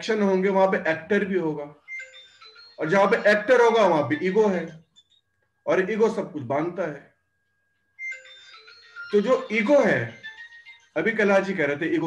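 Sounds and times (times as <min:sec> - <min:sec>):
phone ringtone beeping melody: 0:01.7 - 0:05.3, 0:07.4 - 0:12.0.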